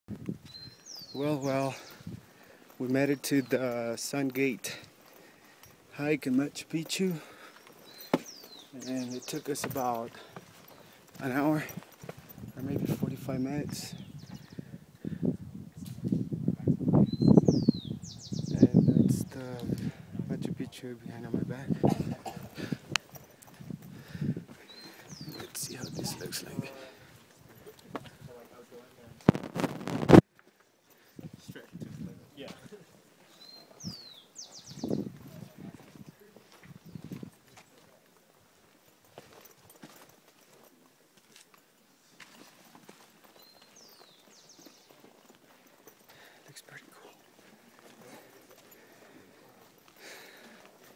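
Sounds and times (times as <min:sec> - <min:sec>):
bird singing: 0:00.4 - 0:04.4, 0:06.0 - 0:11.7, 0:13.4 - 0:14.7, 0:17.0 - 0:19.4, 0:24.6 - 0:26.9, 0:33.3 - 0:35.4, 0:43.4 - 0:45.3
people talking quietly: 0:18.2 - 0:29.6, 0:44.5 - 0:50.9.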